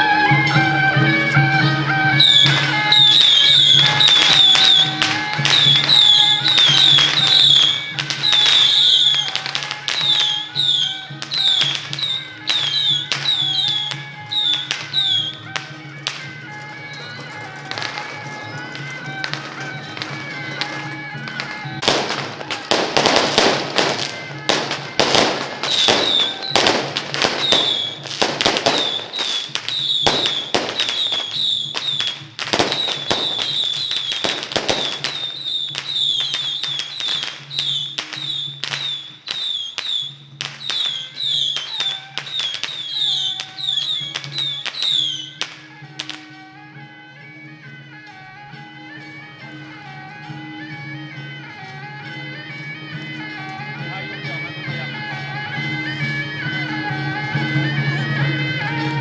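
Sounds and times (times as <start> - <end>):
droning wind instrument: 0.0 - 59.0
firecrackers crackling: 0.0 - 59.0
procession band music: 0.0 - 59.0.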